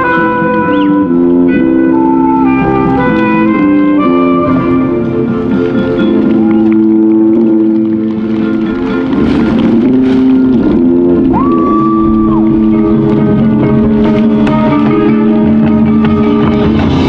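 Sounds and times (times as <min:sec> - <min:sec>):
marching band playing: 0:00.0 - 0:17.0.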